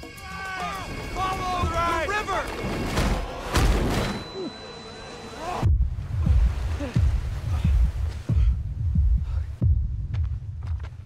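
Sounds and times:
deep low thumps: 0:05.6 - 0:11.0.

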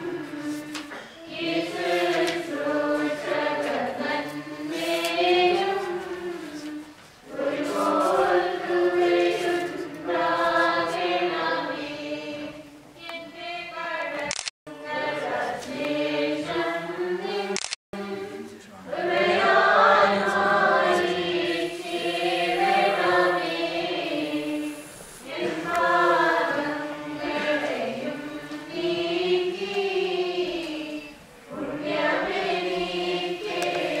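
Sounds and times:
choir singing a hymn: 0:00.0 - 0:34.0.

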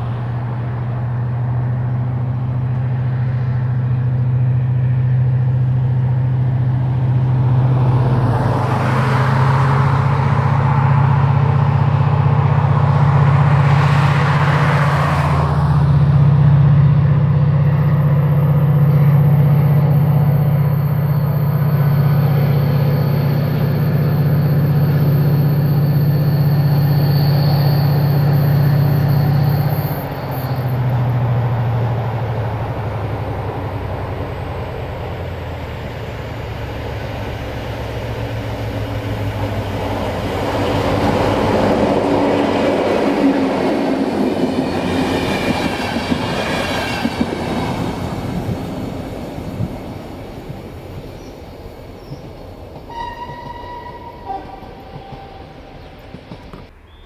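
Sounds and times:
train passing: 0:00.0 - 0:57.0
low engine hum: 0:28.1 - 0:52.9.

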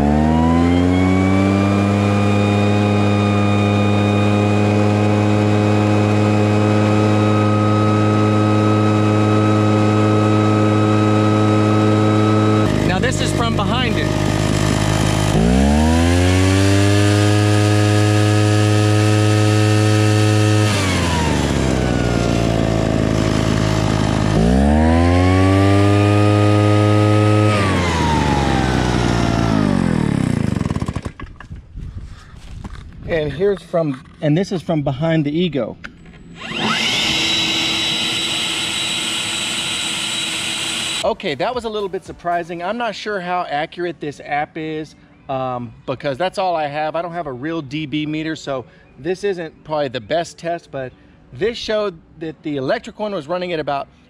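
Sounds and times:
leaf blower whining: 0:00.0 - 0:31.5, 0:35.9 - 0:41.2.

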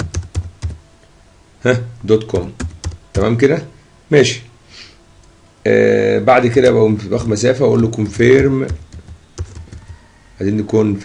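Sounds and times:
keyboard typing: 0:00.0 - 0:00.8, 0:02.4 - 0:03.4, 0:07.2 - 0:10.1.

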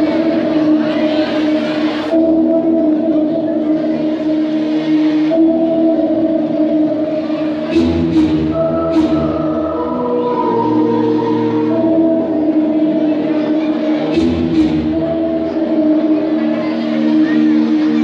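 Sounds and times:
folk dance music with singing: 0:00.0 - 0:18.0.

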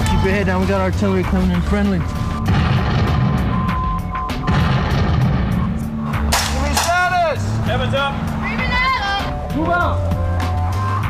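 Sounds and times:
background music: 0:00.0 - 0:11.0
heavy low booms: 0:02.4 - 0:06.7
rifle shots cracking: 0:04.5 - 0:07.0.

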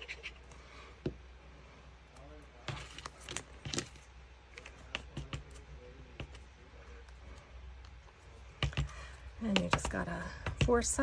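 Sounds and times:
paper handling: 0:02.6 - 0:05.6.

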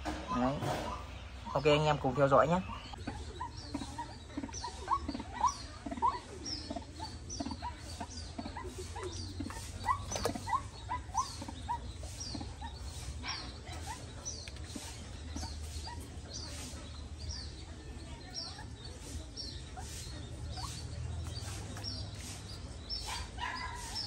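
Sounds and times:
birds chirping: 0:00.0 - 0:24.0.

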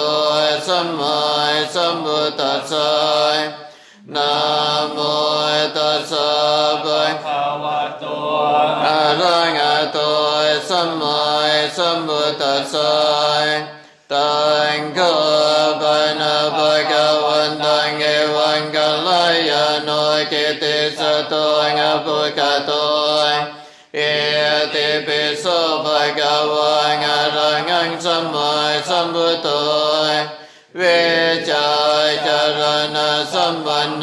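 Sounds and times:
chanting on a near-monotone: 0:00.0 - 0:34.0.

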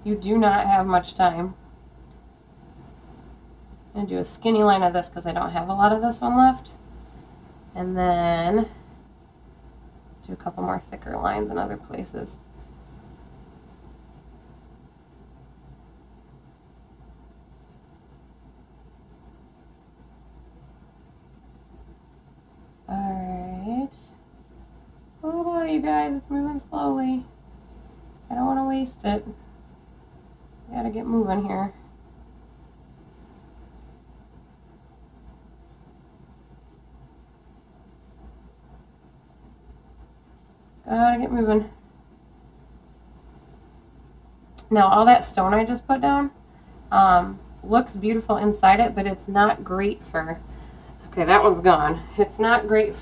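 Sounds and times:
low room noise: 0:00.0 - 0:53.0
crushed glass ticking: 0:12.6 - 0:48.3.

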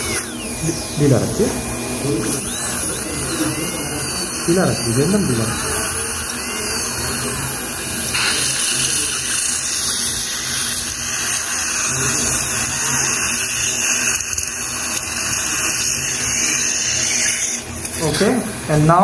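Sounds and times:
dental drill cutting metal: 0:00.0 - 0:19.0.

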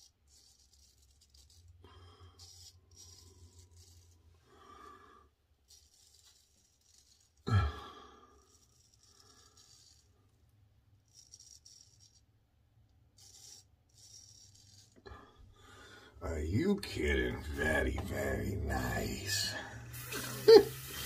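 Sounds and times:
razor scraping stubble: 0:00.0 - 0:04.4, 0:05.6 - 0:07.5, 0:08.4 - 0:10.2, 0:11.0 - 0:12.3, 0:13.1 - 0:15.0, 0:16.6 - 0:19.3.

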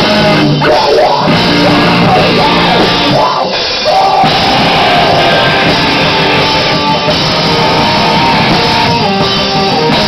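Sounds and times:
drums: 0:00.0 - 0:10.0
electric guitar: 0:00.0 - 0:10.0
person singing: 0:00.6 - 0:08.5.

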